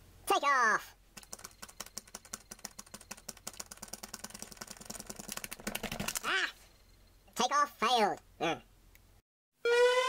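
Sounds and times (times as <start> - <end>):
plastic toy rattling and clicking: 1.2 - 6.3.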